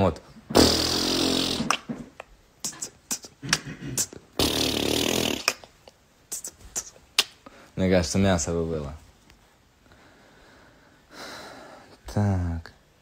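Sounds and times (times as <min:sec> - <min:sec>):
man beatboxing: 0:00.5 - 0:05.7, 0:06.3 - 0:07.4.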